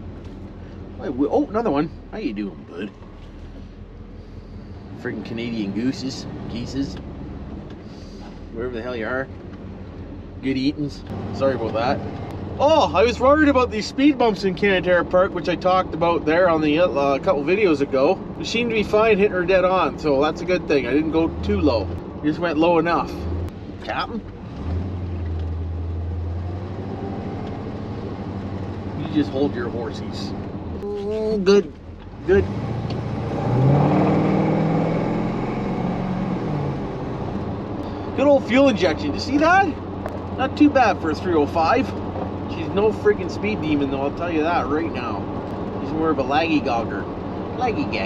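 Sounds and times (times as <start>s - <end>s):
engine humming: 0.0s - 48.0s
road and wind noise: 0.0s - 48.0s.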